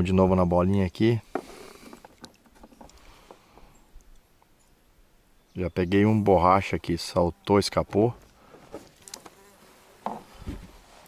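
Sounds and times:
flying insect buzzing: 7.0 - 11.0.

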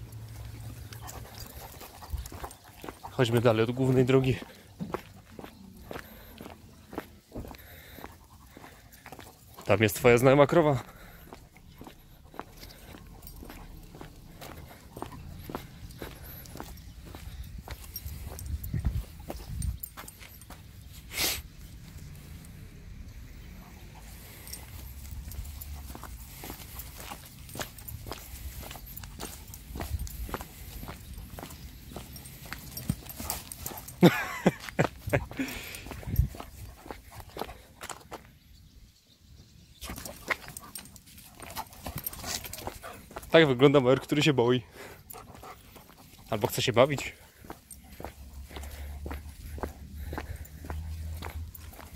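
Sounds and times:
footsteps on wet lane: 41.2 - 51.9.

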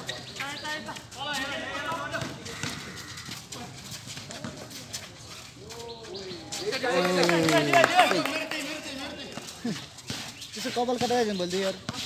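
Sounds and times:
taps and scuffs on court: 0.0 - 12.0.

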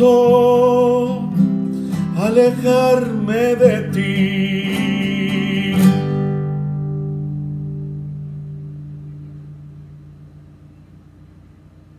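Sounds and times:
classical guitar chord ringing: 0.0 - 11.1
faint hum: 0.0 - 11.9.

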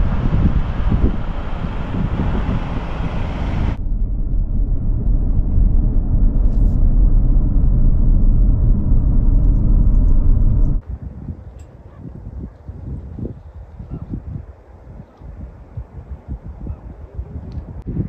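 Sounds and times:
car cabin low rumble: 0.0 - 10.8
wind rushing through car window: 0.0 - 18.0.

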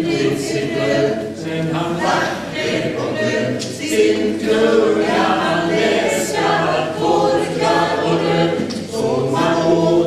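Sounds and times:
mixed choir singing a cappella: 0.0 - 10.0.

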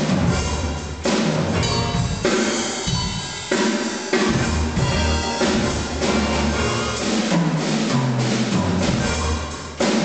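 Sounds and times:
bass drum: 0.0 - 3.2, 4.2 - 10.0
drum strokes: 0.0 - 10.0
cymbals washing: 1.6 - 10.0.

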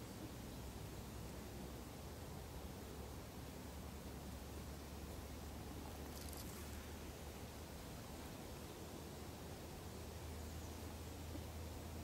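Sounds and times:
background hiss: 0.0 - 12.0
soft rustle: 5.7 - 8.4.

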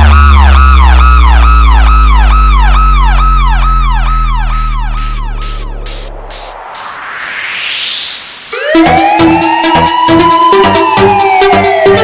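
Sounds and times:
police siren yelp: 0.0 - 6.2, 7.3 - 12.0
deep sliding bass note: 0.0 - 8.5.

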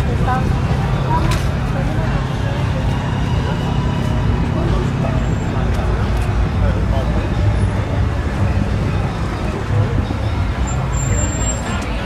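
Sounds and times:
cars idling: 0.0 - 12.0
indistinct voices: 0.0 - 12.0
road traffic rumble: 0.0 - 12.0.

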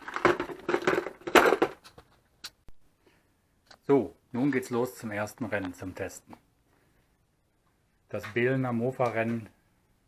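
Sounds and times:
metal parts rattling in plastic box: 0.0 - 2.0.

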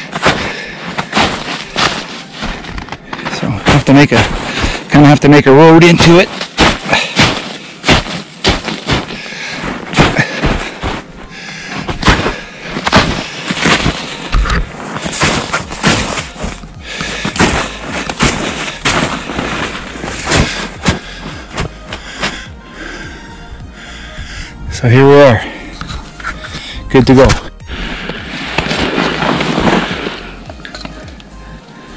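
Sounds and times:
footsteps crunching in deep snow: 0.0 - 23.1, 23.9 - 30.6.

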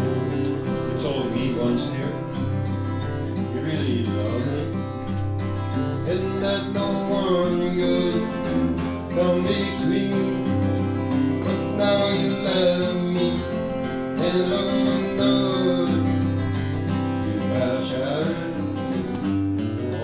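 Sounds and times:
acoustic guitar strummed and picked: 0.0 - 20.0.

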